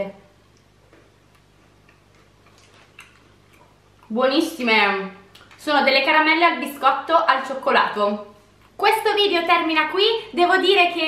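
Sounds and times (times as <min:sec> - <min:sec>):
steady low hum: 0:00.0 - 0:11.0
chewing crunchy biscuits: 0:00.4 - 0:04.1.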